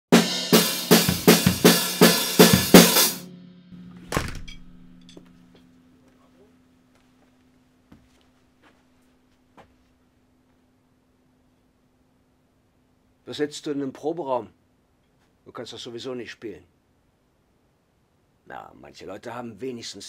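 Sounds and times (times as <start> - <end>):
drum and cymbal strokes: 0.1 - 4.0
faint steady hum: 3.3 - 20.0.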